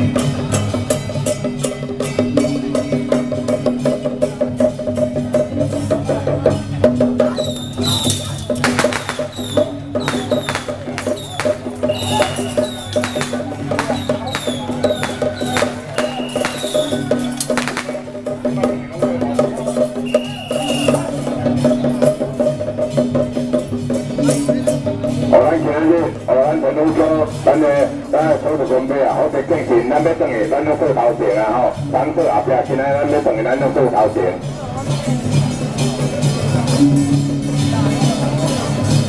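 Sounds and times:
drums beating fast rhythm: 0.0 - 39.0.

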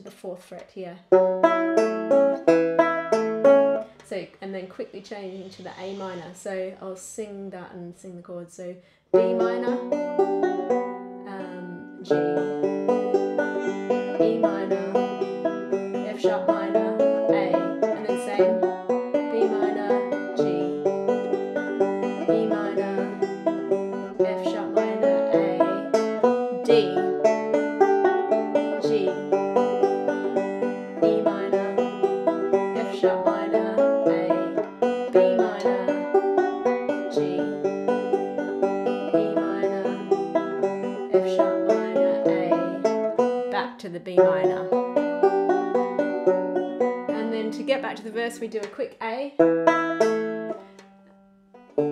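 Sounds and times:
banjo fingerpicked: 0.0 - 6.7, 9.1 - 51.9.

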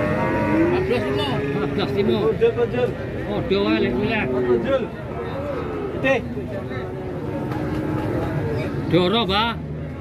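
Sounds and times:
cow mooing: 0.0 - 2.2.

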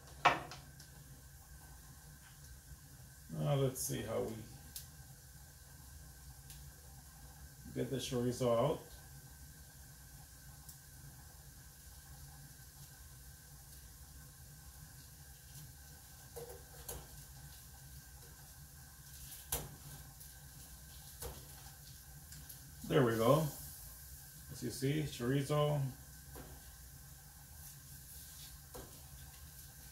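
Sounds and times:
oil sizzling in frying pan: 0.0 - 29.9.

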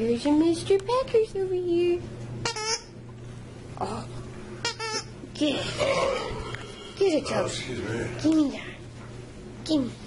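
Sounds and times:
squeaky dog toy squeak: 2.4 - 2.9.

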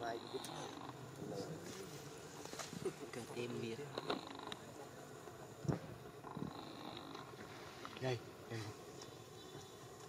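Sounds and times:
faint insect buzzing: 0.0 - 10.0.

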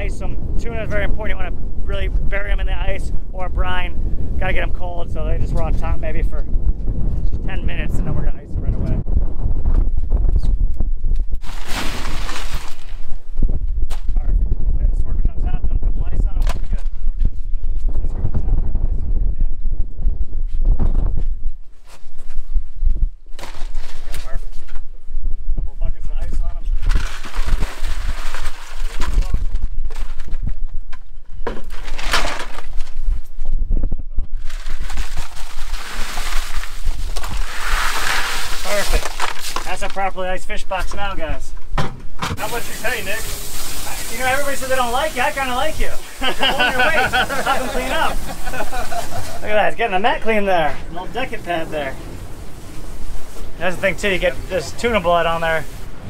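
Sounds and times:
low rumble: 0.0 - 21.6
ice clattering and crunching: 11.4 - 13.1, 26.8 - 30.4, 31.6 - 33.0, 34.4 - 40.1.

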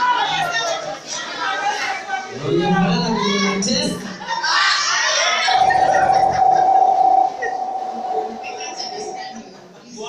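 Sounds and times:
microphone feedback ringing tone: 5.5 - 9.6.

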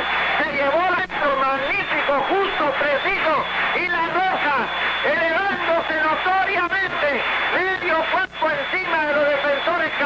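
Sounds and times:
man commentating on radio: 0.0 - 10.0.

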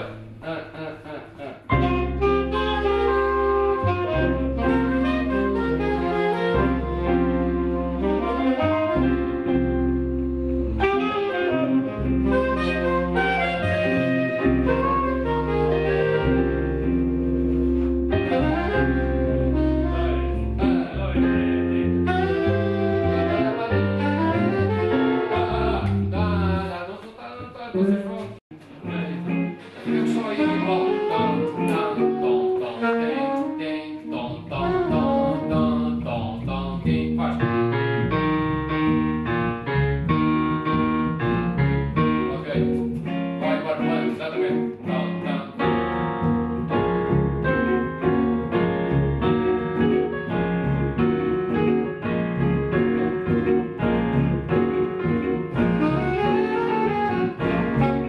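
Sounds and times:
digital piano: 0.0 - 26.7, 27.5 - 58.0
electric bass guitar: 0.0 - 26.8, 27.6 - 33.6, 34.2 - 58.0.

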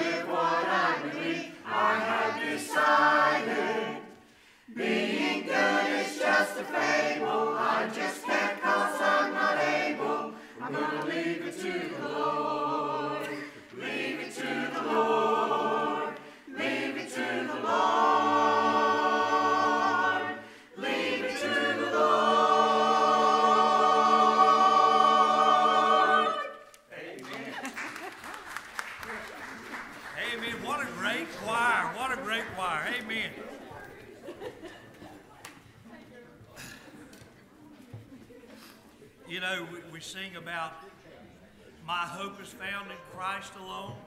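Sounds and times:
church choir singing gospel: 0.0 - 34.9, 41.7 - 44.0
scattered clapping: 26.7 - 33.3.

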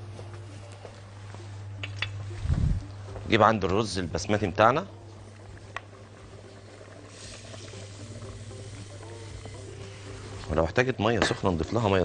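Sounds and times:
broth bubbling: 4.9 - 10.5
rice pouring into liquid: 6.4 - 10.0.

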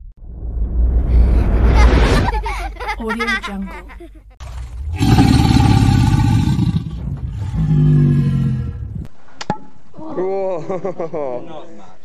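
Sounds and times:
whoosh and rumble effect: 0.0 - 2.6, 6.0 - 9.1.

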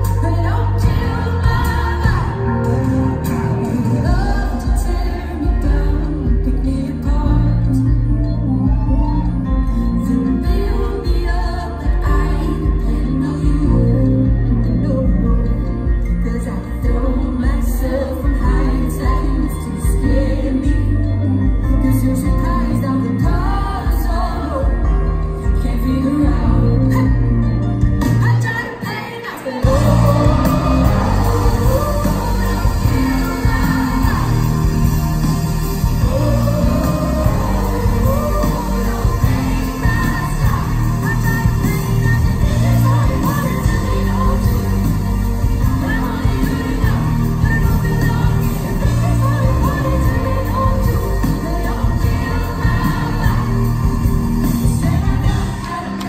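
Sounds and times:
live pop band: 0.0 - 56.0
woman singing: 0.0 - 56.0.

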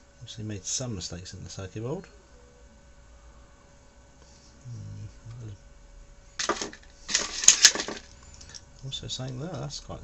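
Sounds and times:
hand tools clattering on workbench: 6.4 - 8.6.

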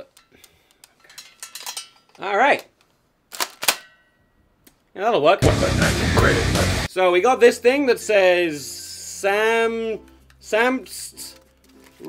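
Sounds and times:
shotgun being racked: 3.3 - 3.9.

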